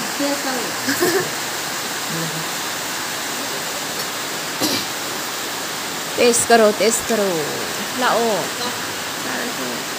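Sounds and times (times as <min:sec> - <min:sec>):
steady rushing hiss: 0:00.0 - 0:09.9.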